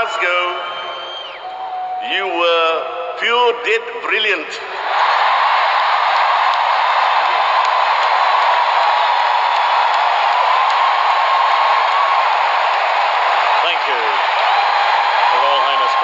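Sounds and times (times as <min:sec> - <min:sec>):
stadium crowd cheering and applauding: 0:00.0 - 0:02.7, 0:04.8 - 0:16.0.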